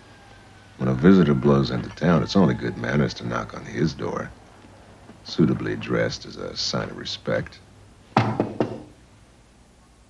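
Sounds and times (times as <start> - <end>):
knocks on a door: 8.2 - 8.9.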